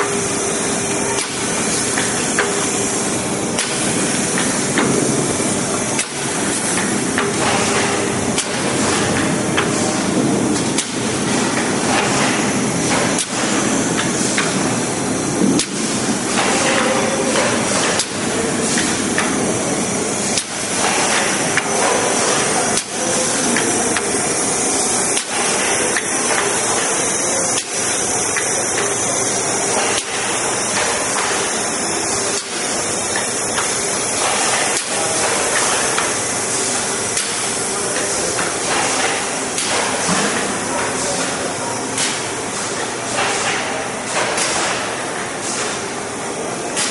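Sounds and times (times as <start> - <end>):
packaging machine clatter and hiss: 0.0 - 46.9.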